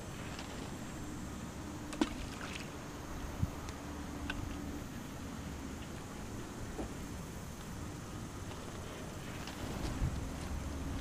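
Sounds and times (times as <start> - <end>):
faint hum: 0.0 - 11.0
low outdoor rumble: 0.0 - 11.0.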